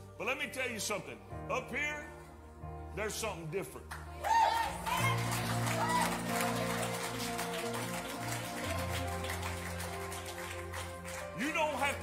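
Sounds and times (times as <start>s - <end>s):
church band soft backing music: 0.0s - 12.0s.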